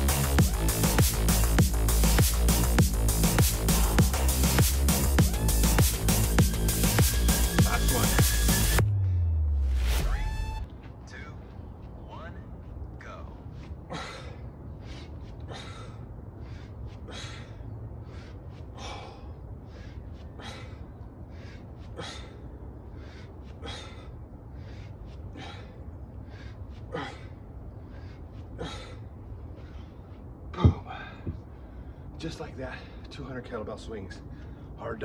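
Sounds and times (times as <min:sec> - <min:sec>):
man breathing hard: 0:13.1 - 0:33.1, 0:34.2 - 0:34.8.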